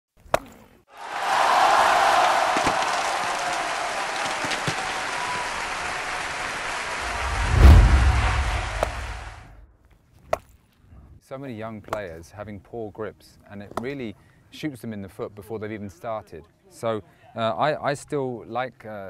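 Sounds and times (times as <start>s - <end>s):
long wash of noise: 7.0s - 9.5s
deep boom: 7.0s - 9.6s.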